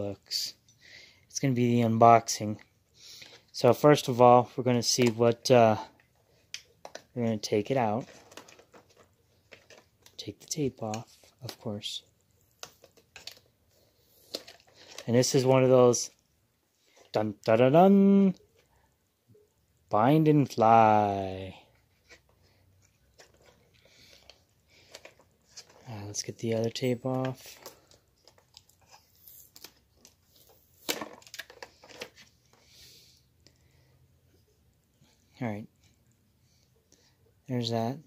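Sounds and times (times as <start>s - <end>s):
plastic clicks: 6.0s - 7.2s, 30.8s - 32.3s
plastic crinkling: 6.3s - 11.7s, 12.3s - 15.5s, 21.9s - 32.6s
plastic packaging crackling: 6.6s - 15.5s, 22.8s - 32.6s
sharp plastic crack: 30.8s - 32.3s.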